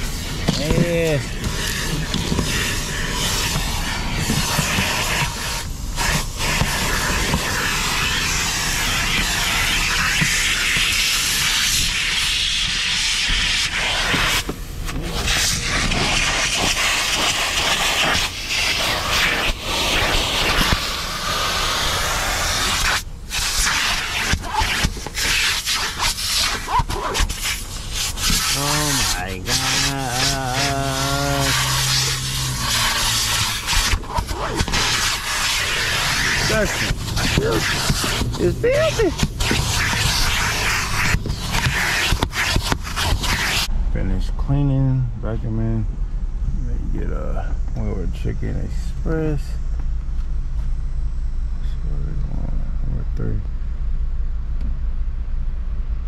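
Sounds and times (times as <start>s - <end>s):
vacuum cleaner sucking on seats: 0.0s - 43.7s.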